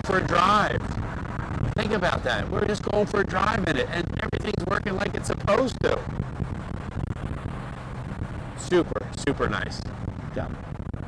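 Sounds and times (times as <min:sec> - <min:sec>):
car engine running: 0:00.0 - 0:11.0
road and wind noise: 0:00.0 - 0:11.0.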